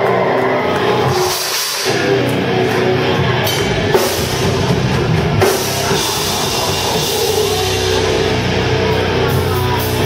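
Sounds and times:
distorted guitar sustained notes: 0:00.0 - 0:10.0
heavy metal band playing: 0:00.0 - 0:10.0.

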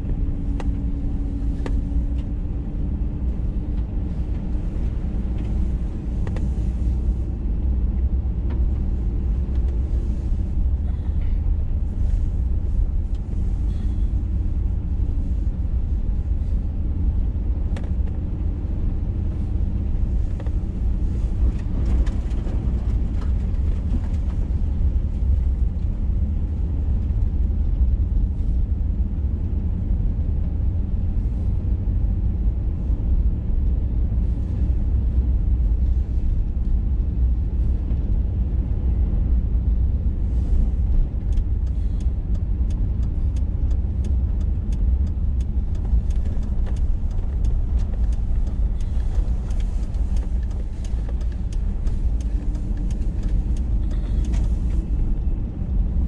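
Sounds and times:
vehicle driving on gravel: 0:00.0 - 0:29.9, 0:33.2 - 0:56.0
light ticks: 0:17.6 - 0:18.3, 0:19.5 - 0:25.9, 0:40.3 - 0:56.0.

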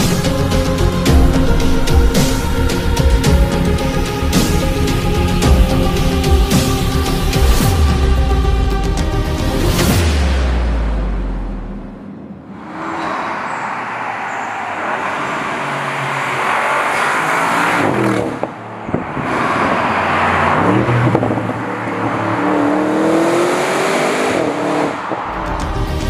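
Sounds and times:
car engine accelerating hard: 0:12.5 - 0:26.0.

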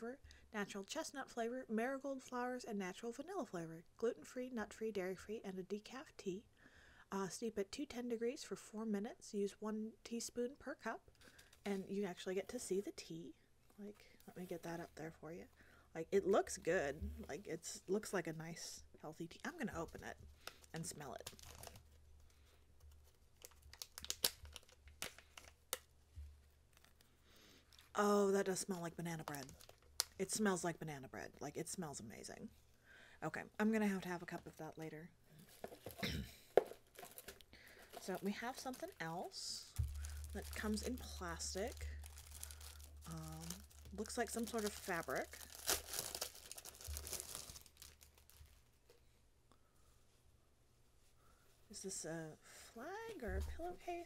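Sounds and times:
plastic pouch crinkling and tearing: 0:20.4 - 0:22.0, 0:22.8 - 0:25.9, 0:26.7 - 0:28.0, 0:29.2 - 0:30.2, 0:36.6 - 0:48.7.

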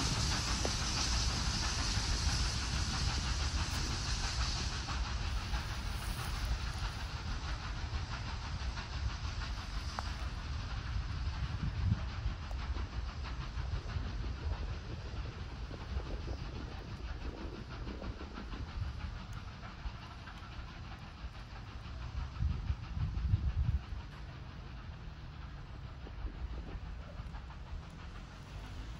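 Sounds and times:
distant steam locomotive exhaust beats: 0:00.0 - 0:28.9
low irregular rumble: 0:00.0 - 0:28.9.

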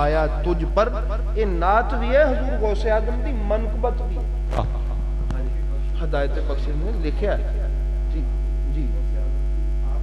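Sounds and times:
low electrical mains hum: 0:00.0 - 0:10.0.

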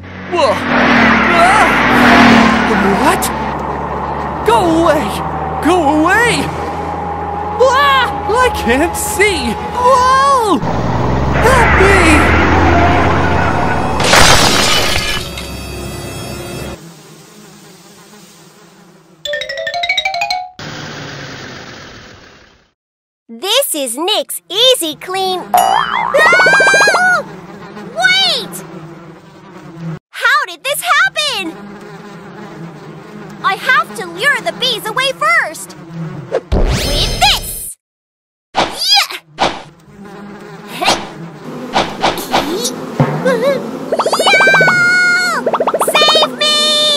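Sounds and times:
cartoon bees buzzing: 0:00.0 - 0:20.1, 0:24.6 - 0:30.0, 0:30.7 - 0:36.5, 0:39.2 - 0:46.9
cartoon car crash: 0:10.7 - 0:15.5, 0:36.5 - 0:37.2
short rising sound effects: 0:25.6 - 0:27.0, 0:43.9 - 0:46.3.

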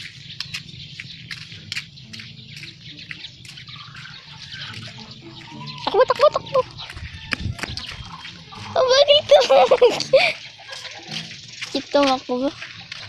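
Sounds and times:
footsteps on wet gravel road: 0:00.0 - 0:13.0.

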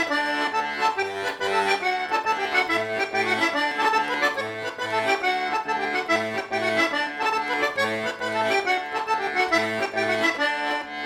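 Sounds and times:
button accordion playing: 0:00.0 - 0:11.0.

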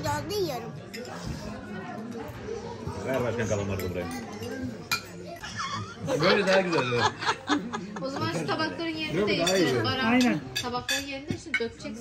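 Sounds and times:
people talking and laughing: 0:00.0 - 0:12.0.

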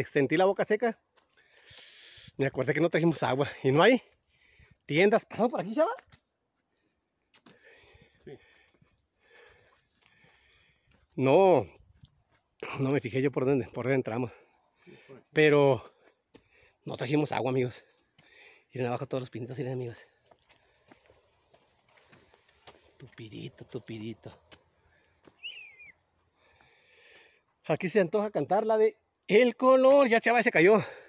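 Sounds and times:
faint footsteps on forest path: 0:01.0 - 0:02.1, 0:03.1 - 0:27.7.

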